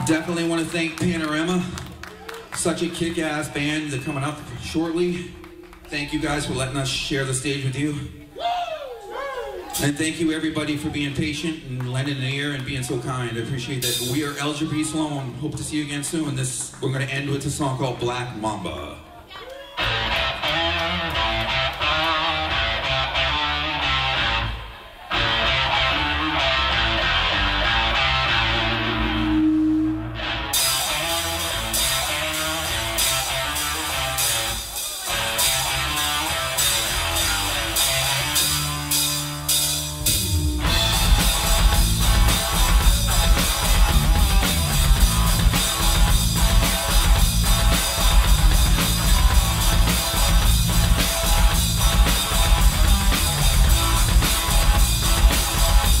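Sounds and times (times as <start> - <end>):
rock band playing: 13.8 - 14.5, 19.8 - 56.0
electric guitar: 19.8 - 56.0.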